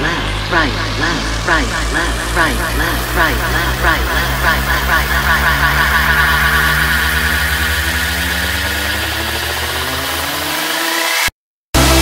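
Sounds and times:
dance music beat drop: 0:00.0 - 0:12.0
electronic dance music build-up: 0:00.0 - 0:12.0.

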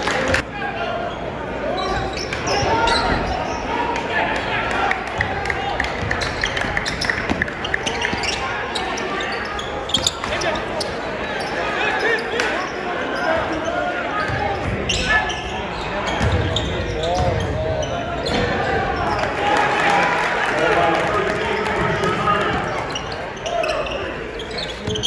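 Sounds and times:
voices of players and spectators: 0:00.0 - 0:25.0.

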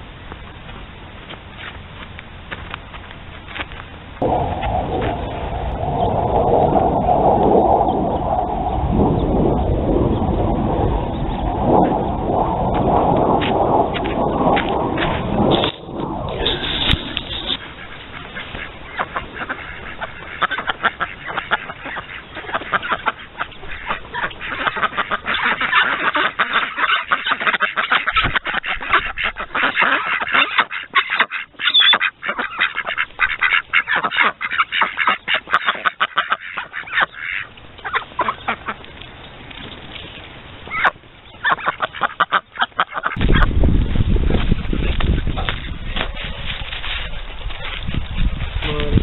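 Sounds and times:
loud rumbling noise: 0:04.1 - 0:20.8
ducks quacking: 0:16.4 - 0:38.8, 0:40.7 - 0:43.5.

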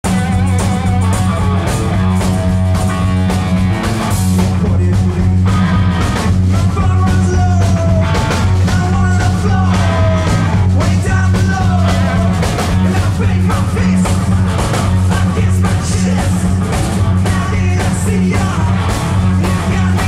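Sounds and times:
drum kit: 0:00.0 - 0:20.0
electric guitar: 0:00.0 - 0:20.0.

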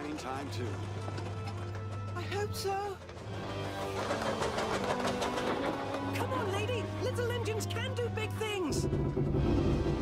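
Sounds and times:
orchestral music: 0:00.0 - 0:10.0
train wheel clatter: 0:00.0 - 0:10.0
steam locomotive chuffing: 0:03.2 - 0:07.4.

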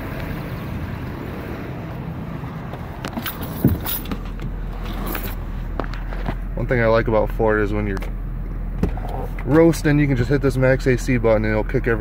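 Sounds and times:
car door shutting: 0:03.1 - 0:05.1, 0:08.8 - 0:09.3.

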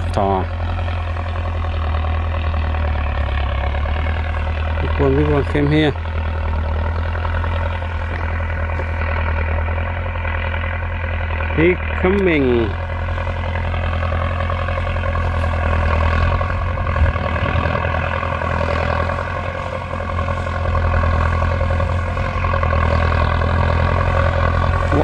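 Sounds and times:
tractor diesel engine droning: 0:00.0 - 0:25.0.

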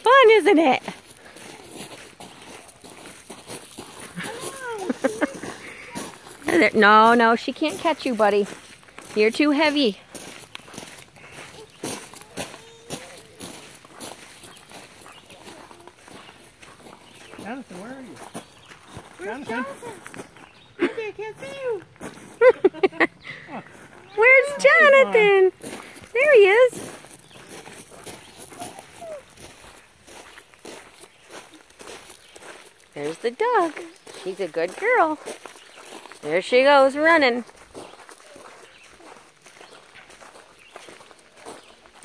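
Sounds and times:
footsteps crunching on gravel: 0:00.1 - 0:42.0.

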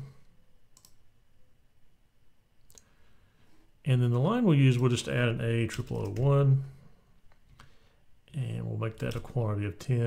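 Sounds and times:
faint room hiss: 0:00.0 - 0:10.0
computer mouse clicks: 0:00.8 - 0:01.0, 0:05.8 - 0:06.3.

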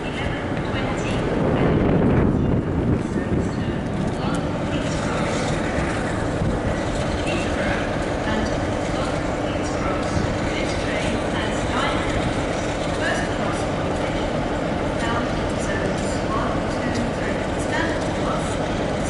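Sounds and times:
diesel locomotive engine rumbling: 0:00.0 - 0:19.0
faint voices: 0:00.0 - 0:19.0.

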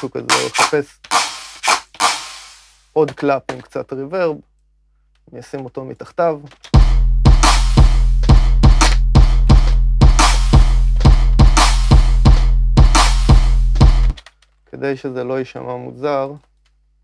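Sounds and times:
trap drum loop: 0:00.0 - 0:03.7, 0:06.7 - 0:14.2.

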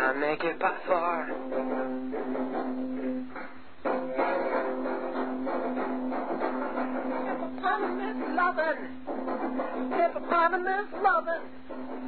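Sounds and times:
guitar strumming chords: 0:00.0 - 0:12.0.

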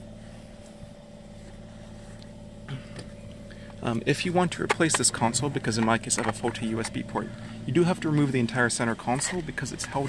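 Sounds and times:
low mechanical hum with tones: 0:00.0 - 0:10.0.

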